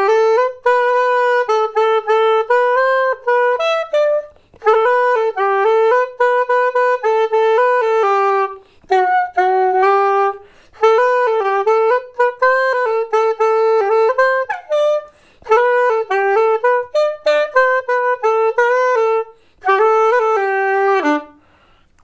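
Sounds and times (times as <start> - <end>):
reed wind instrument melody: 0.0 - 22.0.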